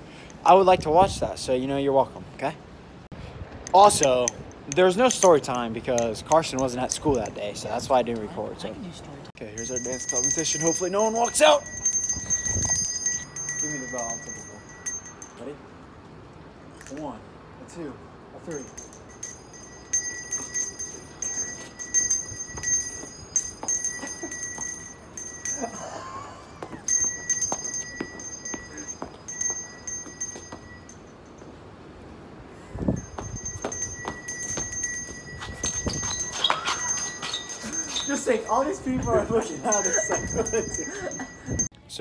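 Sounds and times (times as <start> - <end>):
handbell ringing: 9.5 - 15.6, 18.5 - 31.5, 32.9 - 41.7.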